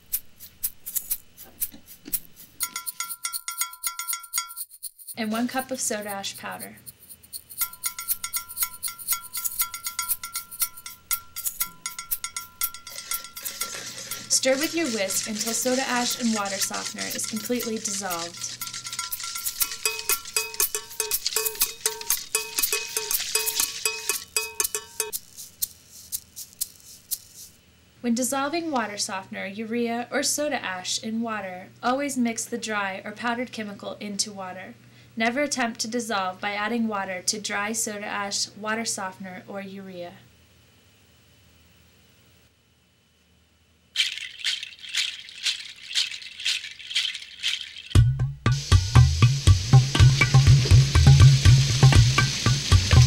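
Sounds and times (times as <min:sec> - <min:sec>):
whisk stirring in plastic bucket: 0:00.0 - 0:27.5, 0:44.0 - 0:48.0
percussion shaker: 0:00.0 - 0:27.7, 0:44.0 - 0:53.0
bass line: 0:48.0 - 0:53.0.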